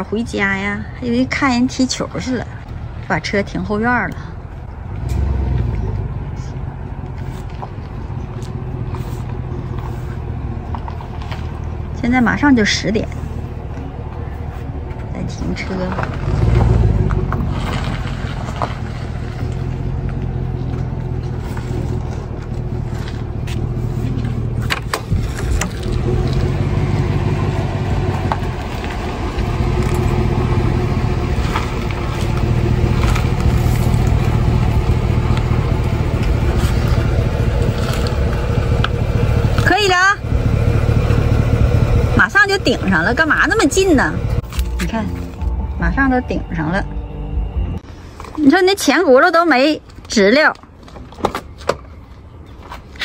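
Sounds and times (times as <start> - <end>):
truck engine humming: 0.0 - 53.0.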